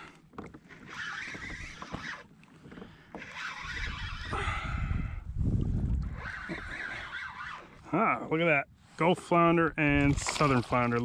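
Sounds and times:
fishing reel being cranked: 0.7 - 2.3, 3.1 - 4.4, 6.1 - 7.8
wind rumble on microphone: 3.6 - 7.1.

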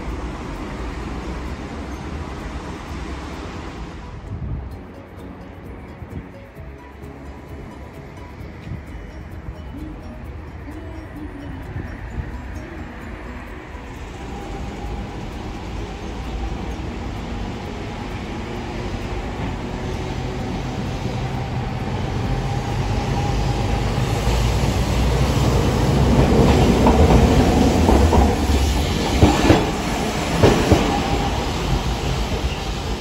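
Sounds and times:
streetcar rumbling: 0.0 - 33.0.

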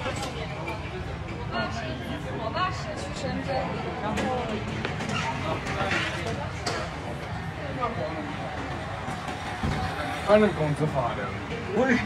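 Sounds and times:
low hum of city noise: 0.0 - 12.0.

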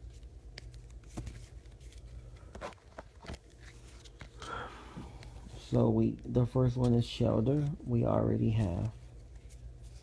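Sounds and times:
trading cards tapping and rustling: 0.0 - 4.4
low steady hum: 0.0 - 10.0.

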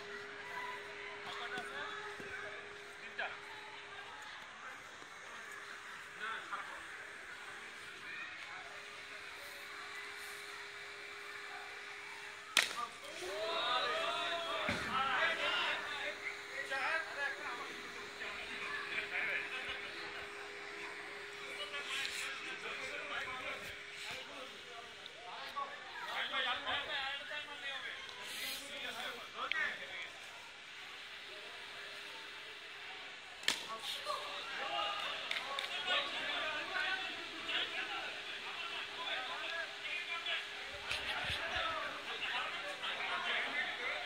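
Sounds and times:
faint outdoor chatter: 0.0 - 44.0
people shouting: 12.6 - 15.9.

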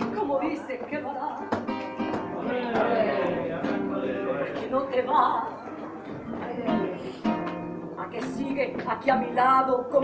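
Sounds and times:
flamenco guitar strumming: 0.0 - 10.0.

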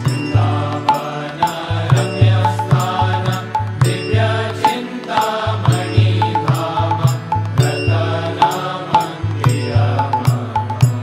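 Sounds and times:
chanted mantra: 0.0 - 11.0.

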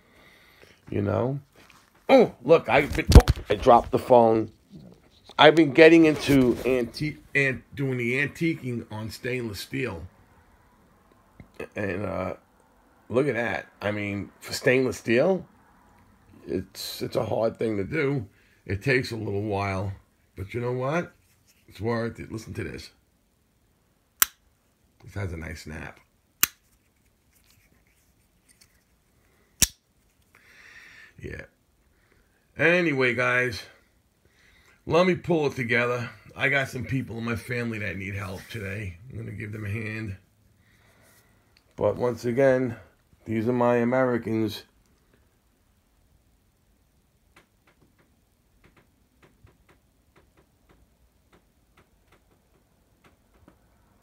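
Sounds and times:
soft rustle: 0.6 - 7.3, 21.0 - 22.0, 26.6 - 30.3.

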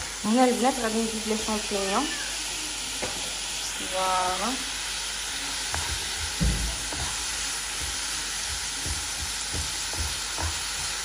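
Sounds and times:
oil sizzling in a frying pan: 0.0 - 11.0.

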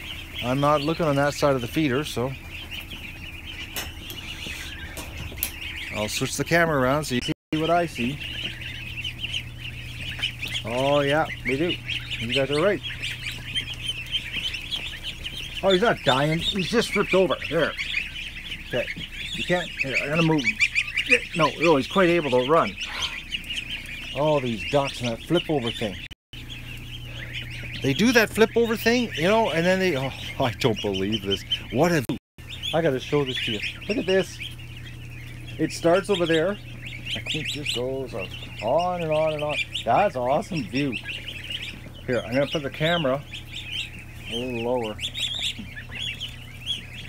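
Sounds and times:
ducklings peeping: 0.0 - 47.0
low steady hum: 0.0 - 47.0.

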